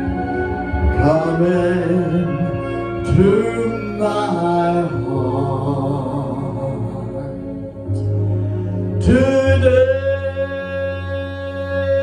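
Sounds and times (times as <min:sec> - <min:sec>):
musical accompaniment: 0:00.0 - 0:12.0
man singing into a microphone: 0:00.8 - 0:08.1, 0:08.9 - 0:12.0.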